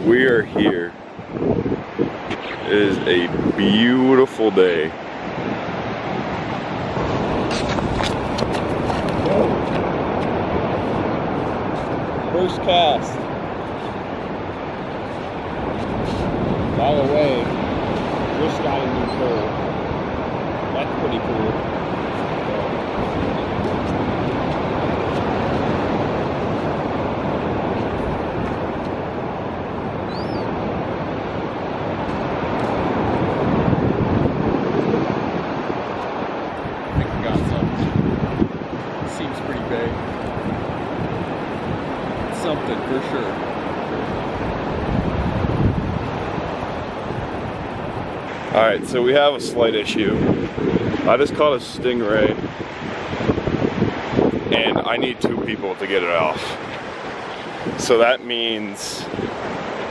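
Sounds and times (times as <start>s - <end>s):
ocean surf: 0.0s - 59.9s
wind: 0.0s - 59.9s.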